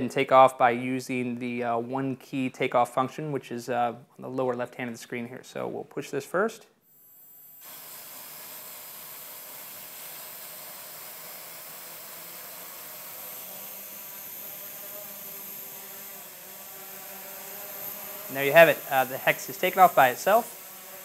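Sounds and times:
drone propellers whirring: 11.1s - 21.0s.

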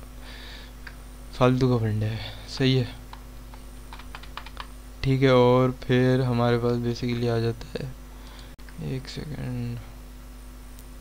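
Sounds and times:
computer keyboard clicks: 3.9s - 4.7s.

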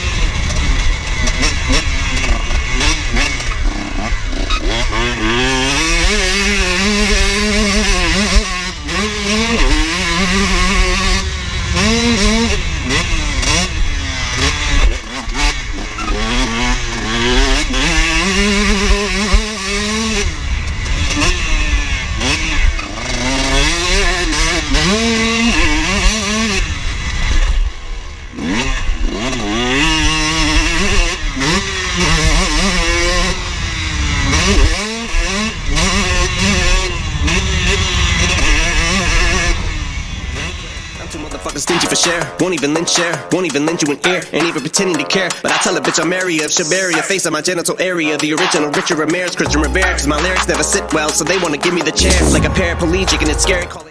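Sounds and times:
motocross bike engine revving: 0.0s - 42.4s, 49.4s - 53.9s.

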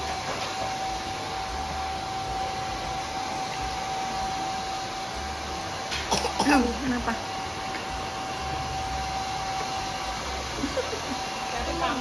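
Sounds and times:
small electric appliance whining: 0.0s - 12.0s.

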